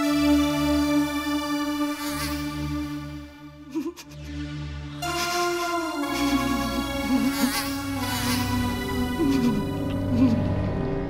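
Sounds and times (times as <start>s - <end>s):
housefly buzzing: 0.0s - 3.6s, 5.0s - 10.4s.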